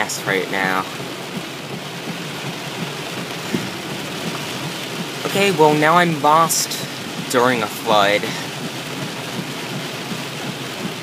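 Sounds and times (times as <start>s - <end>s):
heavy rain on car roof: 0.0s - 11.0s.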